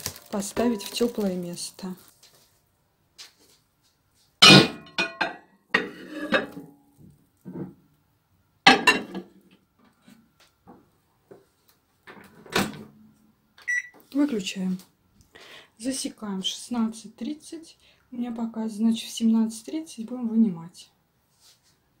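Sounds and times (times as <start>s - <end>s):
glass bowl clinking: 4.6s - 5.4s
microwave beep: 13.6s - 14.0s.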